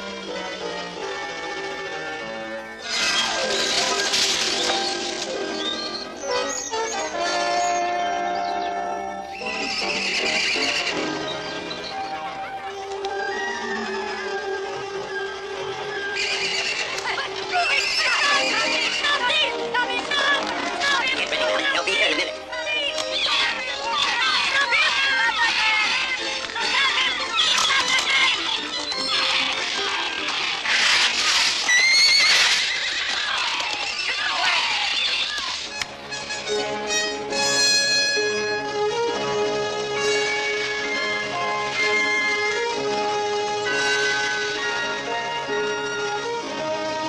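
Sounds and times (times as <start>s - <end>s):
orchestral film score: 0.0s - 47.0s
horses whinnying: 2.8s - 22.4s, 23.1s - 35.6s
horse neighing loudly: 9.4s - 11.3s, 15.9s - 19.3s, 31.6s - 34.5s.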